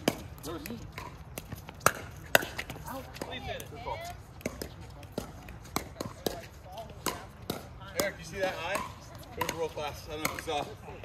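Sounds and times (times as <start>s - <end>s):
paddles hitting plastic ball: 0.0s - 10.8s.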